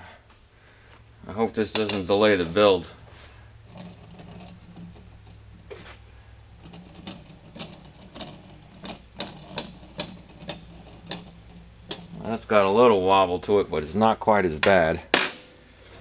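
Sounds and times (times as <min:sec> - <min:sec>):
steel rod rolling on glass: 0:03.6 - 0:14.8.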